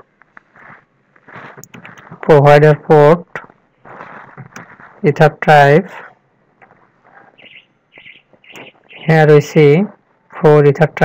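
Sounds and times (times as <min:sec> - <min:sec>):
small bird chirping: 0:07.3 - 0:09.1.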